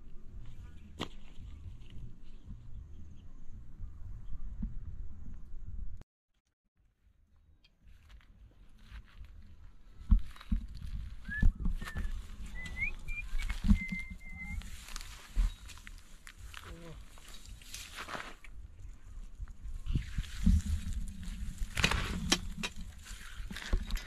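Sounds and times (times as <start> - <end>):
wind rumble on microphone: 0.0 - 6.0, 7.9 - 24.0
footsteps through dry grass and stones: 0.1 - 2.9, 7.4 - 24.0.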